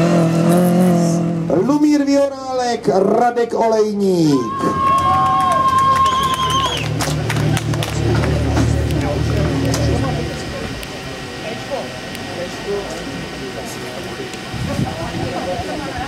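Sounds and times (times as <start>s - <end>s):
crowd chatter: 4.2s - 16.0s
car engine idling: 4.4s - 16.0s.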